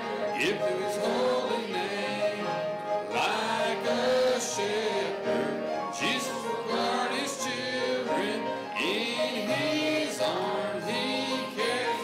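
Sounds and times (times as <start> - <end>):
congregation and choir singing hymn: 0.0 - 12.0
piano: 0.0 - 12.0.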